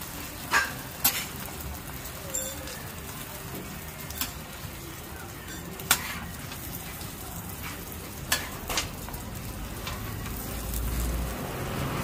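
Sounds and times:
food sizzling on a griddle: 0:00.0 - 0:12.0
spatula clicking on griddle: 0:00.4 - 0:01.7, 0:03.5 - 0:04.6, 0:05.4 - 0:11.2.

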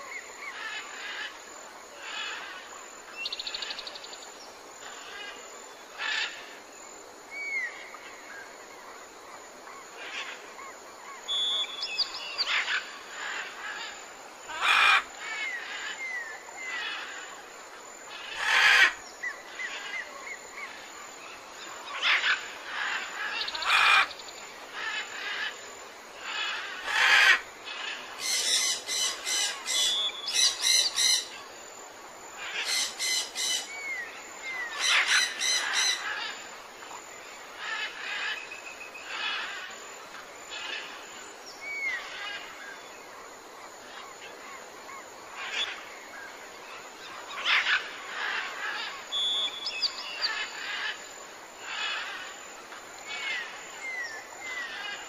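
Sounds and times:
birds chirping and calling: 0:26.3 - 0:31.3, 0:32.4 - 0:36.4, 0:47.1 - 0:51.0.

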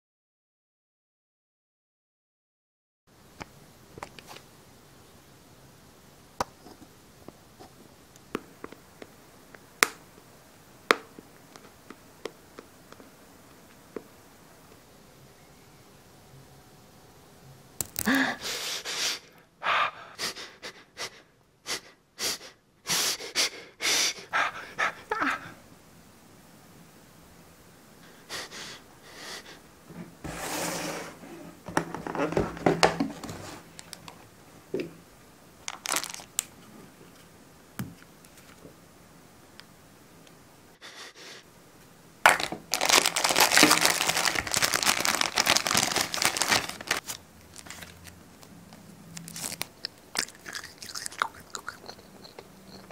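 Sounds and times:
person crying out: 0:18.0 - 0:18.5, 0:24.9 - 0:25.6
person gasping in pain: 0:18.0 - 0:18.7
person whimpering: 0:18.0 - 0:21.2, 0:23.2 - 0:25.6
plastic bag crinkling: 0:35.6 - 0:36.5, 0:42.3 - 0:48.2, 0:49.1 - 0:51.8.

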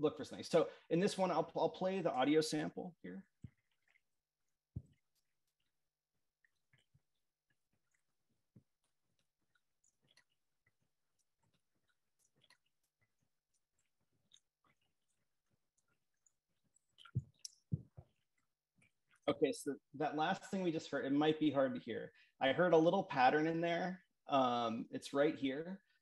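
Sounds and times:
faint clicks and ticks: 0:00.4 - 0:20.8.

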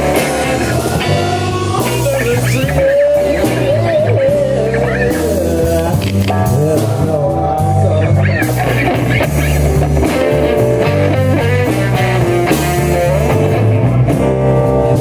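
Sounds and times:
bass guitar: 0:00.0 - 0:15.0
drum kit: 0:00.0 - 0:15.0
electric guitar bending notes: 0:00.0 - 0:15.0.

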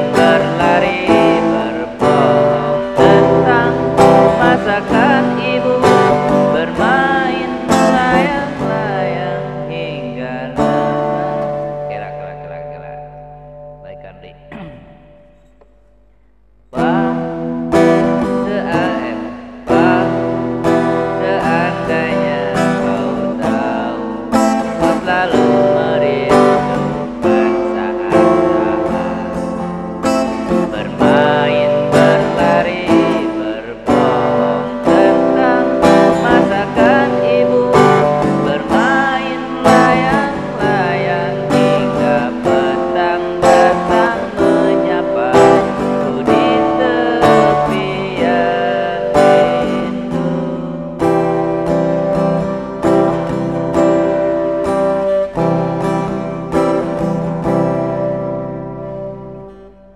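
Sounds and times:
man singing: 0:00.0 - 0:15.8, 0:16.7 - 0:59.5
acoustic guitar strumming: 0:00.0 - 0:59.9.

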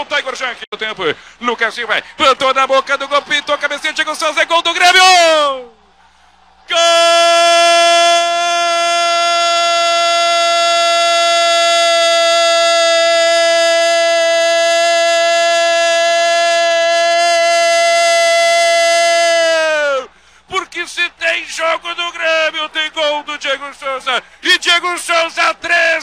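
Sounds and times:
commentator shouting goal: 0:01.4 - 0:05.8, 0:06.7 - 0:26.0.

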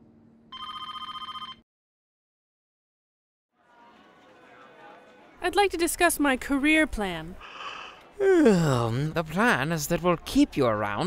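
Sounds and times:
telephone ringing: 0:00.5 - 0:01.6.

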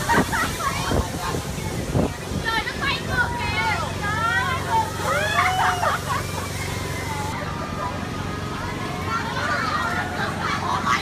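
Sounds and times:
riders shouting and screaming: 0:00.0 - 0:11.0.

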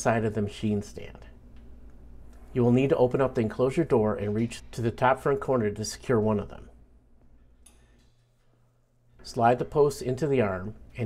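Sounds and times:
faint low steady hum: 0:00.0 - 0:11.0.

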